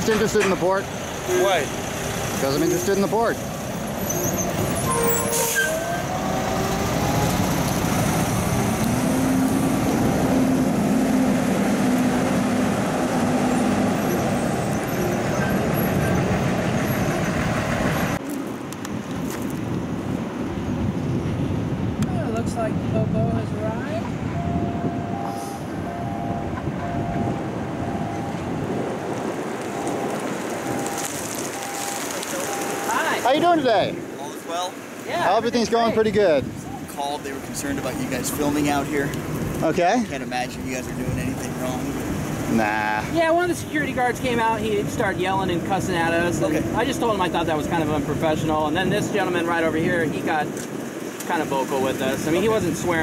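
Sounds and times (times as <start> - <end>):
diesel trucks passing: 0.0 - 53.0
outdoor traffic noise: 0.0 - 53.0.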